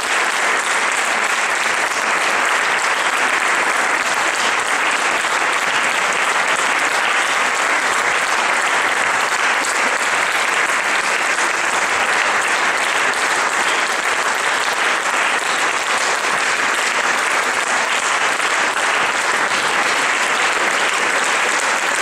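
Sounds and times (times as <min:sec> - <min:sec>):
audience applauding: 0:00.0 - 0:22.0.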